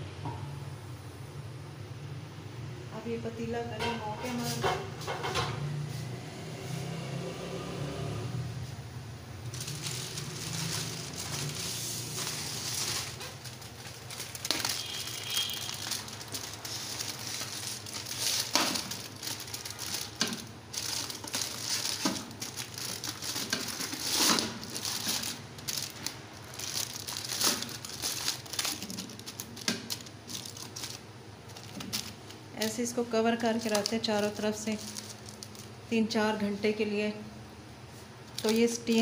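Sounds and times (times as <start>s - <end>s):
aluminium foil crinkling: 9.4s - 35.9s, 38.3s - 39.0s.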